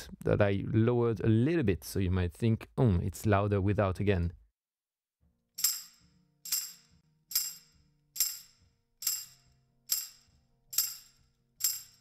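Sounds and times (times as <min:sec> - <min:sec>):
tambourine strikes: 0:05.6 - 0:12.0.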